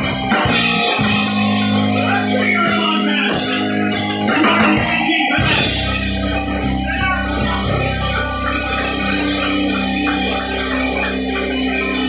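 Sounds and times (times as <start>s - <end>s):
electric guitar: 0.0s - 12.0s
live band playing: 0.0s - 12.0s.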